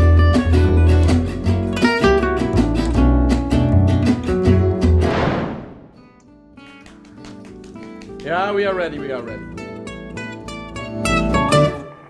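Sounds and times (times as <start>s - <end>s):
jazz acoustic guitar: 0.0s - 5.1s, 5.9s - 12.0s
falling whoosh: 5.0s - 6.0s.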